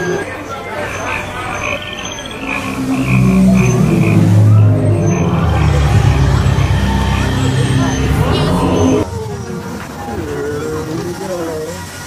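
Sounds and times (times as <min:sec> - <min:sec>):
low frog croaking: 0:00.8 - 0:07.4
high repeating chirp: 0:00.8 - 0:09.0.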